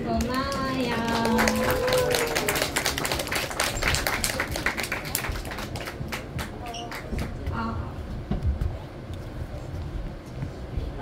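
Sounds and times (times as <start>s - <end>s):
audience clapping: 0.1s - 7.5s.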